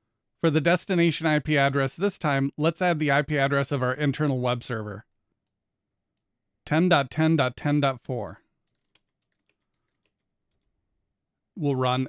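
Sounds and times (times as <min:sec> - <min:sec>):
faint keyboard keystrokes: 0:08.6 - 0:10.7.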